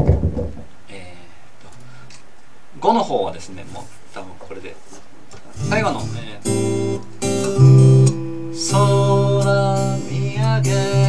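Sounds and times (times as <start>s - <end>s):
acoustic guitar strumming: 5.4s - 11.0s.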